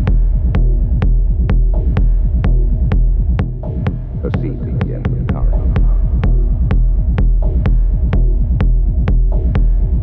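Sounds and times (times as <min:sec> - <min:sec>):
deep steady bass: 0:00.0 - 0:10.0.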